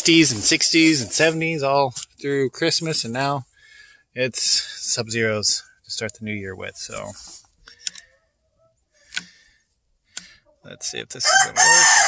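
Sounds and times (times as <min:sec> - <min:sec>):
man speaking: 0:00.0 - 0:03.5, 0:04.2 - 0:07.4, 0:10.6 - 0:11.7.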